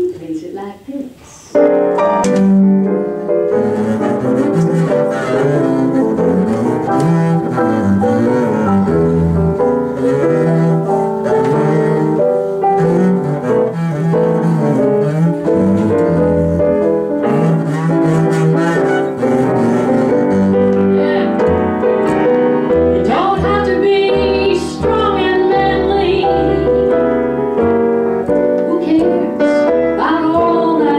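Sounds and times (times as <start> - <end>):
piano comping: 1.6 - 30.9
double bass solo: 2.0 - 30.9.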